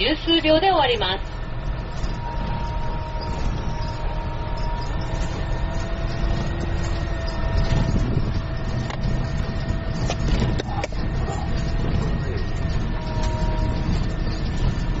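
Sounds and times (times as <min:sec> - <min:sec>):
engine and road rumble: 0:00.0 - 0:15.0
faint whine: 0:00.0 - 0:15.0.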